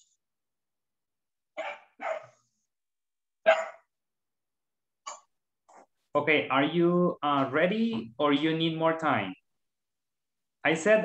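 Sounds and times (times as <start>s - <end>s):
dog barking: 1.6s - 2.4s, 3.4s - 3.9s.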